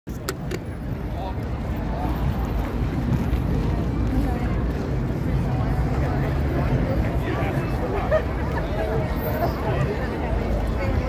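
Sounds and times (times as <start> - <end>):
crowd voices: 0.1 - 11.0
traffic rumble: 0.1 - 11.0.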